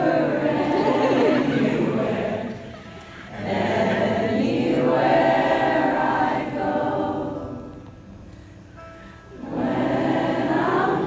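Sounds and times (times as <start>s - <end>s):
voices singing together: 0.0s - 7.9s, 9.4s - 11.0s.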